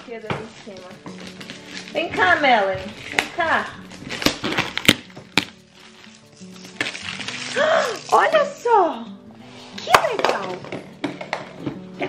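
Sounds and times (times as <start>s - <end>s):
plastic gift wrap crinkling: 0.0s - 11.6s
soft background music: 0.0s - 12.0s.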